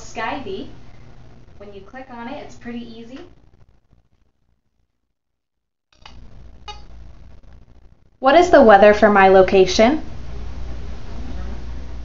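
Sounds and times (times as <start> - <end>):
low steady hum: 0.0 - 5.1, 6.0 - 12.0.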